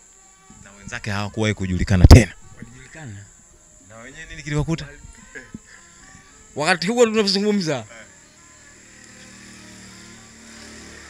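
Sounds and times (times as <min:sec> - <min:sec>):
high-pitched whine: 0:03.8 - 0:11.0
low motor drone: 0:07.8 - 0:11.0.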